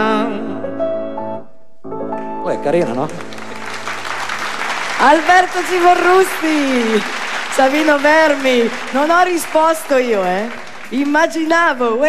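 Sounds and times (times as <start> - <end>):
audience applauding: 2.8 - 12.0.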